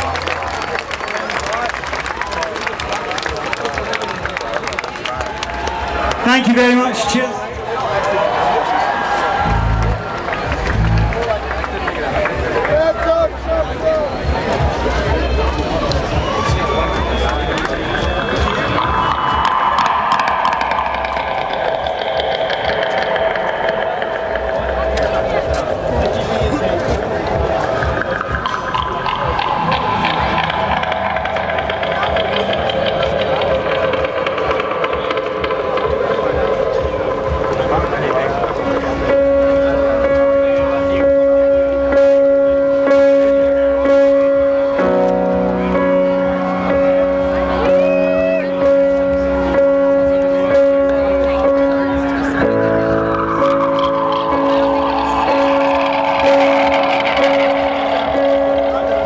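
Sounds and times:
crowd chatter: 0:00.0 - 0:59.0
distorted electric guitar notes: 0:09.1 - 0:12.4, 0:15.6 - 0:59.0
live rock band playing: 0:38.8 - 0:59.0.

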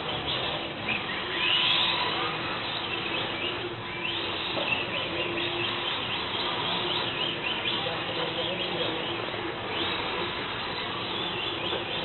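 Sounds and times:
electric motors whining: 0:00.0 - 0:12.0.

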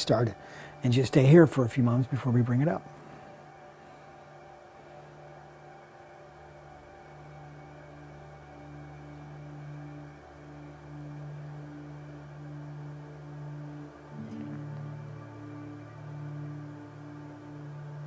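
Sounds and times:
soft ambient drone music: 0:00.0 - 0:18.0.

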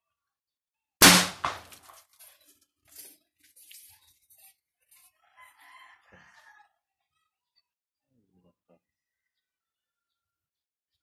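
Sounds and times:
pipe gun bang: 0:01.0 - 0:02.0.

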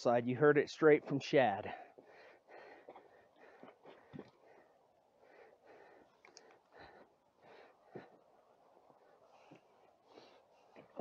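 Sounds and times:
person breathing: 0:01.7 - 0:11.0.

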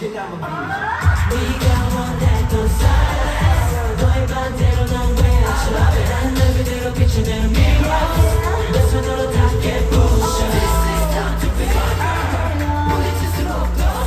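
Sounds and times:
pop song over sound system: 0:00.0 - 0:14.0.

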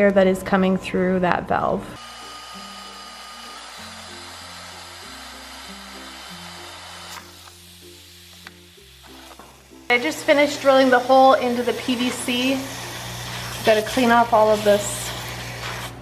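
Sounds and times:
light background music: 0:00.0 - 0:16.0
power drill boring plastic pipe: 0:02.0 - 0:07.6.

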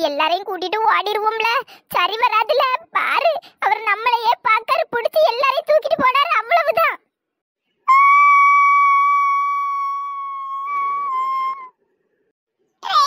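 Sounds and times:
high steady whistle tone: 0:07.8 - 0:11.8.

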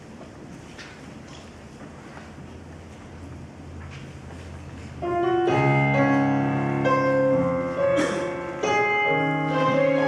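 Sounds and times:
piano chords: 0:04.7 - 0:10.0.

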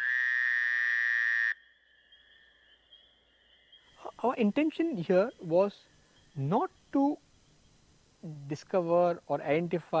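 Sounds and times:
night insects buzzing: 0:00.0 - 0:09.8.

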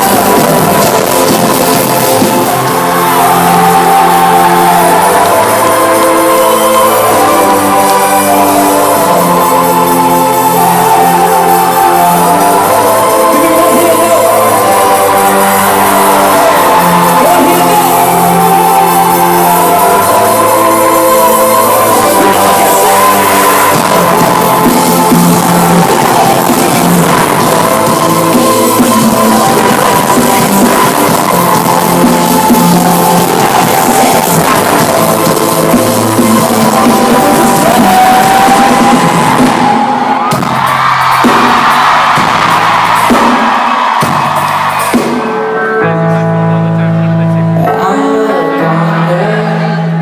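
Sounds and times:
crowd screaming: 0:00.0 - 0:46.2
held synth chords: 0:00.0 - 0:50.0
live rock band music: 0:00.0 - 0:50.0.

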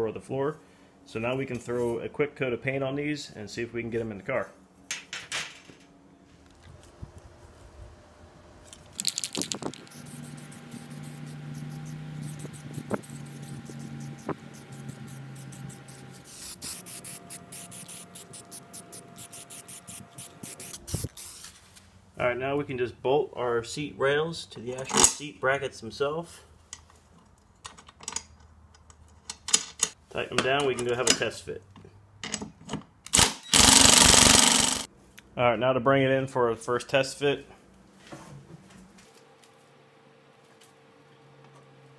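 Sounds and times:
spray paint can hissing: 0:09.0 - 0:21.6
impact driver hammering: 0:33.2 - 0:34.9.

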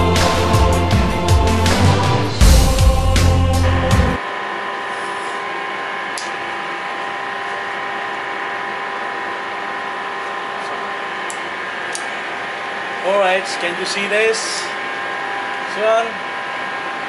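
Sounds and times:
machinery hum: 0:00.0 - 0:17.0.

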